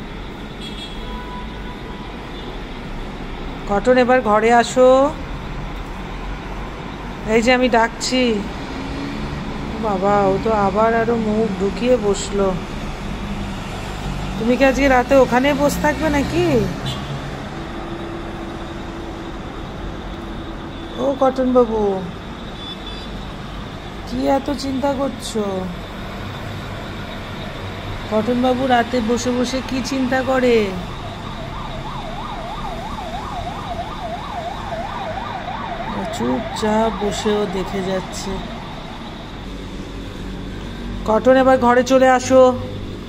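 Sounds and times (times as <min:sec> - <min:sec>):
cars and motorbikes passing: 0:00.0 - 0:43.0
city road traffic hum: 0:00.0 - 0:43.0
emergency vehicle siren: 0:00.0 - 0:43.0.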